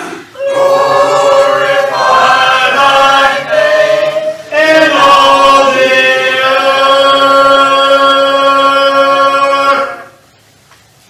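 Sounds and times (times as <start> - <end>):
congregation singing a hymn: 0.4 - 10.2.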